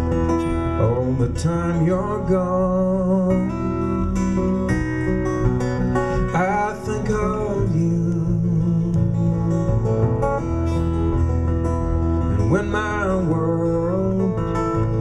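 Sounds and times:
acoustic guitar playing: 0:00.0 - 0:15.0.

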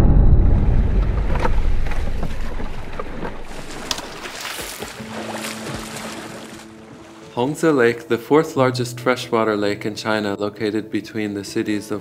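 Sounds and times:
low rumble: 0:00.0 - 0:04.2
water lapping around boat: 0:02.2 - 0:07.8
small splashes: 0:02.6 - 0:07.6.

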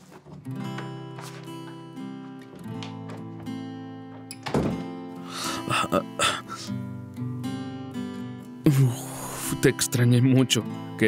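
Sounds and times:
soft acoustic guitar music: 0:00.0 - 0:11.0
sudden thump: 0:04.4 - 0:04.9
man laughing breathily: 0:05.3 - 0:06.8.

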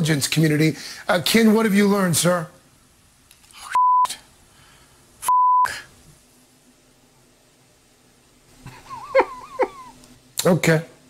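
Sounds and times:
faint hum: 0:00.0 - 0:11.0
short electronic beeps: 0:05.2 - 0:05.7.

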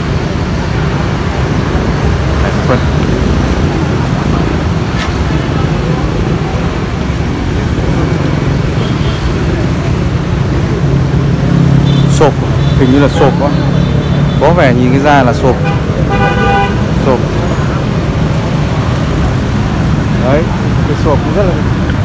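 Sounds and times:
road traffic rumble: 0:00.0 - 0:22.0
vehicle engine: 0:00.0 - 0:22.0.

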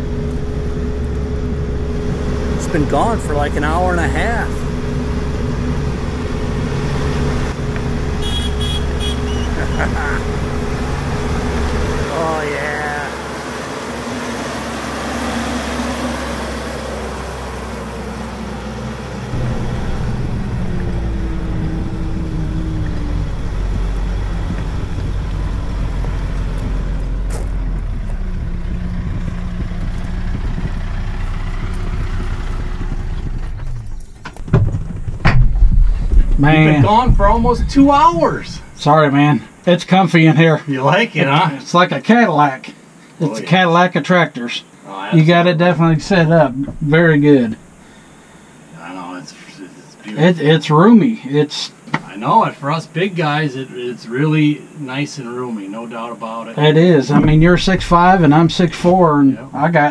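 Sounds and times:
tractor diesel engine running: 0:00.0 - 0:39.8, 0:45.6 - 0:48.7, 0:57.2 - 0:59.9.

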